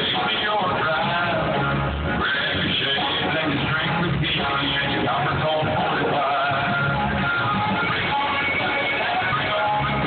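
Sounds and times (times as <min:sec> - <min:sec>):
live country band playing: 0:00.0 - 0:10.0.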